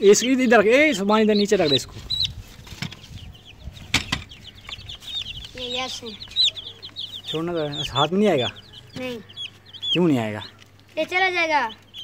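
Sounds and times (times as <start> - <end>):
baby chicks peeping: 0.0 - 12.0
sharp knocks: 3.8 - 4.8.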